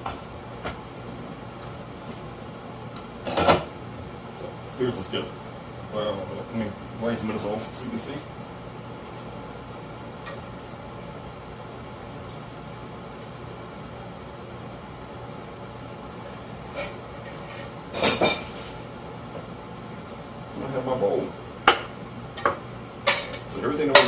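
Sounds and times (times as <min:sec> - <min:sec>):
low room hum: 0:00.0 - 0:24.0
metal skillet and dishes clattering: 0:16.7 - 0:18.8, 0:21.7 - 0:24.0.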